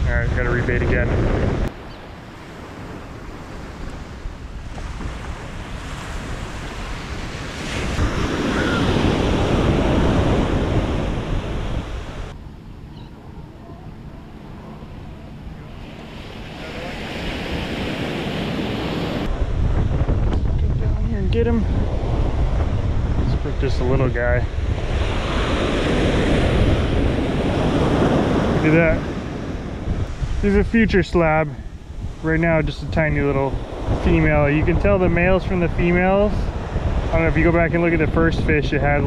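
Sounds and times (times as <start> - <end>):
ocean surf breaking on beach: 0.0 - 12.4, 14.4 - 39.0.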